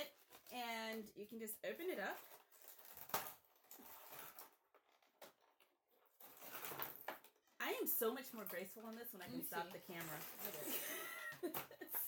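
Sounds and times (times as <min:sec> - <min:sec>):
plastic packaging crinkling: 0:00.0 - 0:11.6.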